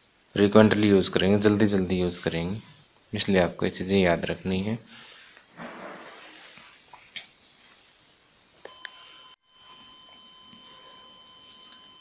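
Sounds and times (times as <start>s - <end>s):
high-pitched electronic whine: 8.5s - 12.0s.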